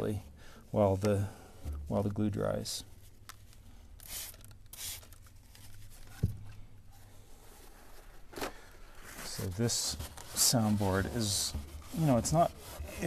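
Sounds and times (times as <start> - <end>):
cloth rubbing over wood: 9.2 - 13.0.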